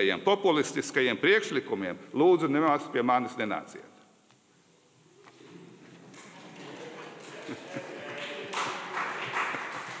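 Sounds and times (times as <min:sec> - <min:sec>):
audience applauding: 0:06.1 - 0:10.0.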